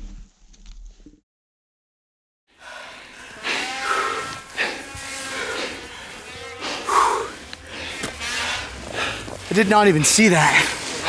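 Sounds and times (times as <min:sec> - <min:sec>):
snowmobile engines revving: 0:02.8 - 0:11.0.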